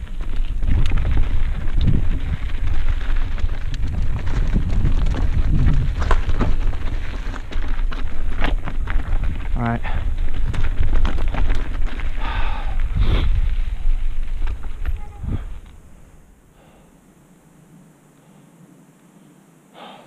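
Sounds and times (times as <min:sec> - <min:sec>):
tyres crunching over gravel: 0:00.0 - 0:15.8
bike rattling: 0:00.0 - 0:16.2
wind buffeting microphone: 0:00.0 - 0:16.3.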